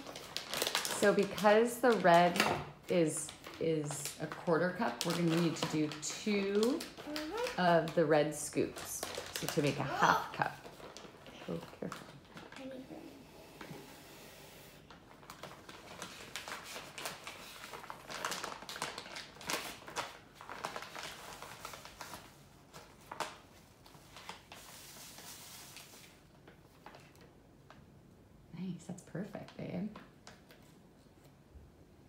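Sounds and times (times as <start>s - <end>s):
plastic bag crinkling: 0.0s - 12.8s, 14.8s - 27.8s.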